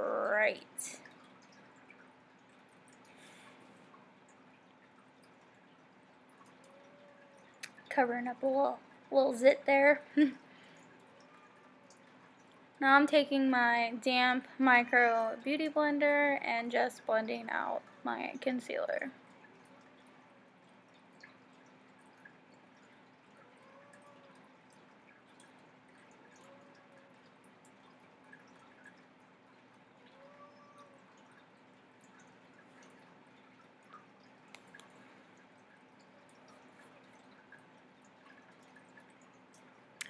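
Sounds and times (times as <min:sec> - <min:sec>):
faint steady hum: 0:00.0 - 0:40.0
faint ticks: 0:00.8 - 0:08.0, 0:18.9 - 0:40.0.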